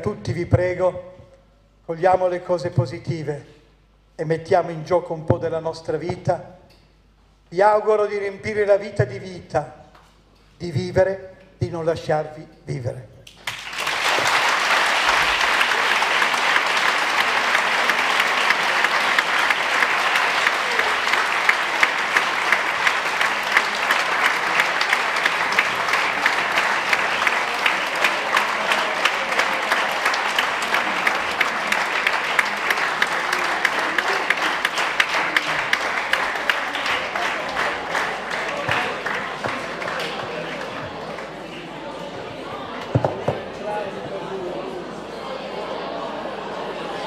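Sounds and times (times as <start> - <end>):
audience applauding: 13.3 - 42.1.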